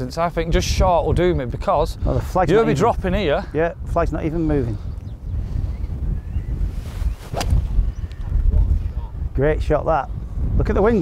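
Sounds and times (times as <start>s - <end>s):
wind rumbling on microphone: 0.0s - 11.0s
golf club striking ball: 7.3s - 7.9s.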